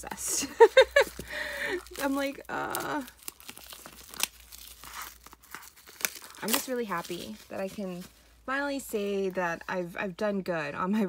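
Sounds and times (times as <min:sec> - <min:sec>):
plastic shrink wrap crackling: 0:00.6 - 0:09.6.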